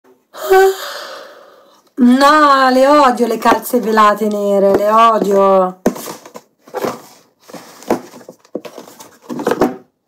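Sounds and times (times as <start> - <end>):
woman gasping: 0.3 - 1.8
woman exhaling: 0.4 - 1.8.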